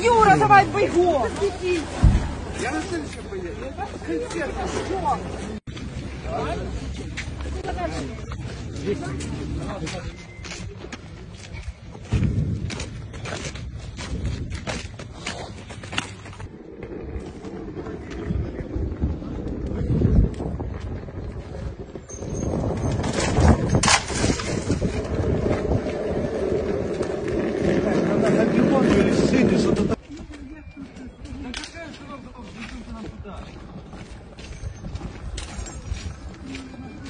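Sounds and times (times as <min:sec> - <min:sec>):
outdoor noise: 0:00.0 - 0:37.0.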